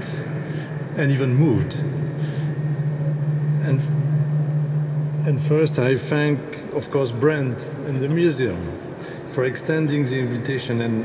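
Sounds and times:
loud low hum: 0:00.0 - 0:11.0.

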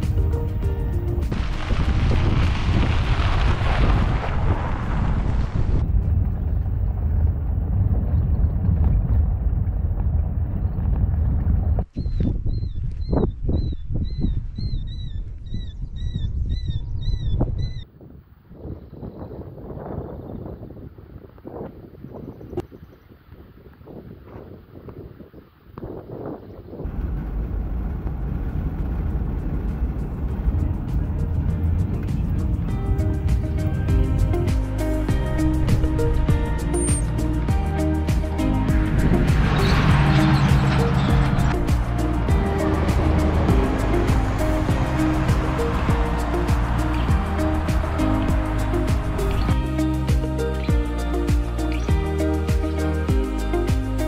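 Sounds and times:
wind buffeting microphone: 0:00.0 - 0:53.3
bird chirping: 0:11.9 - 0:17.9, 0:36.6 - 0:37.4.

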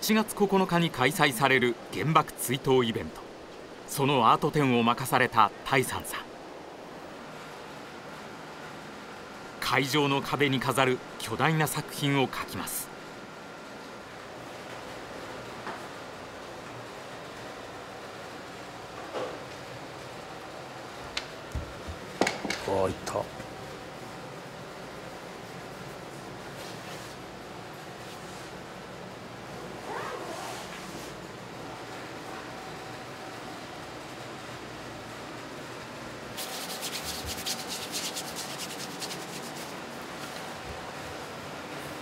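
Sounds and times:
room noise hiss: 0:00.0 - 0:42.0
brush rubbing across paper: 0:36.4 - 0:39.9
scratchy brush strokes: 0:36.4 - 0:40.4.

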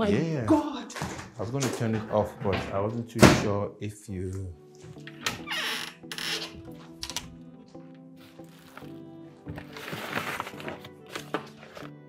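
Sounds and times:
soft music of sustained tones: 0:00.0 - 0:12.0
rustling and crinkling items: 0:07.6 - 0:12.0.

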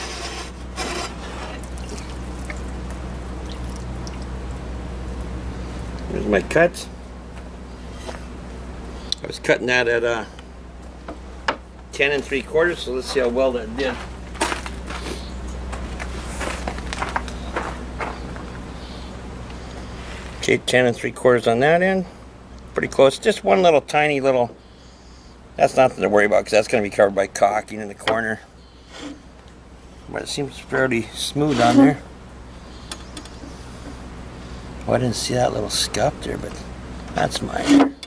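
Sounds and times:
steady low hum: 0:00.0 - 0:38.0
water trickling and dripping: 0:01.8 - 0:04.3.

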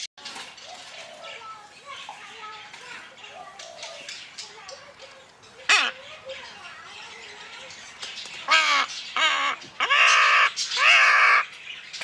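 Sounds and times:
faint chattering: 0:00.2 - 0:11.6
parrot squawk: 0:05.6 - 0:06.1, 0:08.4 - 0:11.5.

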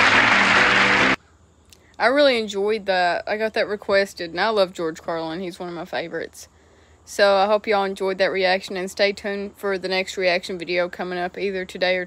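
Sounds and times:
audience applauding: 0:00.0 - 0:01.2
band play-off music: 0:00.0 - 0:01.2.

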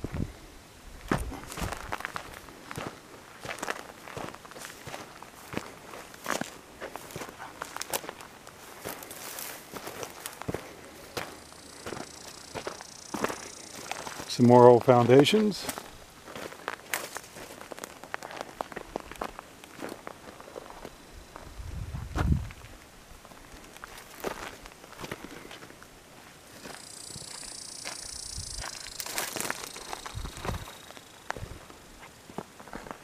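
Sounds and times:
footsteps on gravel: 0:01.0 - 0:33.0.

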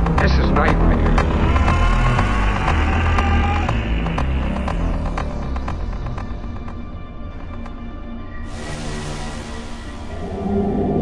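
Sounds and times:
dark electronic music: 0:00.0 - 0:11.0.

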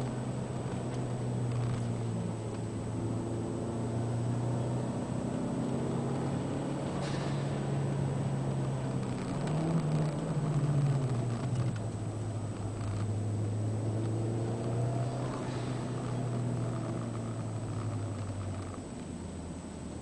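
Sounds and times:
turbocharged car engine revving: 0:00.0 - 0:18.8.

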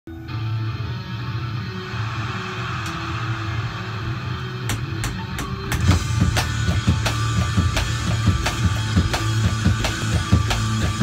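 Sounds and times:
rock guitar with bass: 0:00.1 - 0:11.0
drumsticks tapping practice pads: 0:04.7 - 0:11.0.

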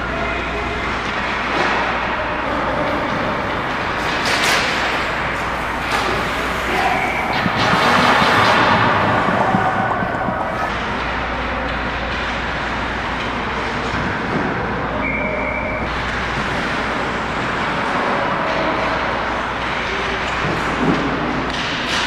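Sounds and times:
low rink hum: 0:00.0 - 0:22.0.

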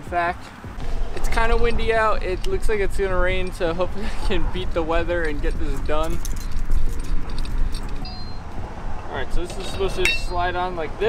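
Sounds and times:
wind rumbling on microphone: 0:00.6 - 0:11.0
light metallic clinks: 0:05.2 - 0:08.6, 0:09.4 - 0:10.4.

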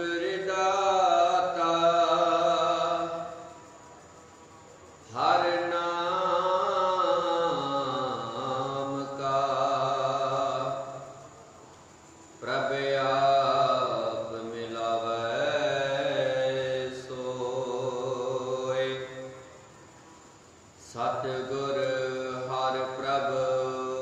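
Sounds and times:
man chanting scripture: 0:00.0 - 0:04.0, 0:05.0 - 0:11.4, 0:12.4 - 0:19.6, 0:20.8 - 0:24.0.

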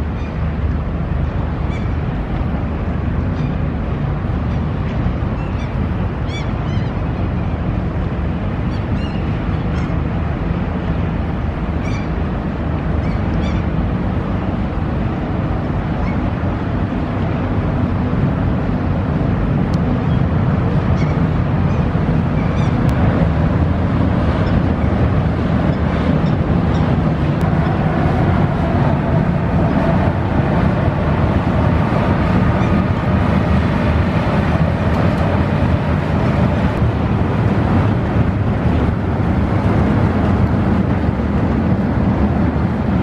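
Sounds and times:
ship engine rumble: 0:00.0 - 0:43.0.

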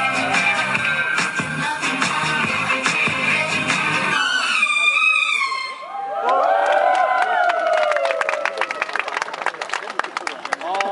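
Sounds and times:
dance music through a pa: 0:00.0 - 0:04.6
audience shouting and cheering: 0:05.7 - 0:08.9
people clapping: 0:06.2 - 0:10.9.

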